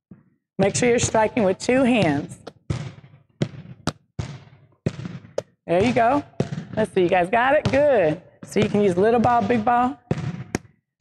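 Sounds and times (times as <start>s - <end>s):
balls thudding on gym floor: 1.9s - 10.8s.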